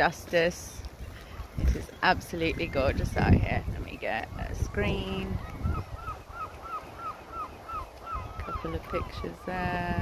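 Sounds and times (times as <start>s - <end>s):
wind noise on microphone: 0.0s - 10.0s
bird calling rapid notes: 5.4s - 9.4s.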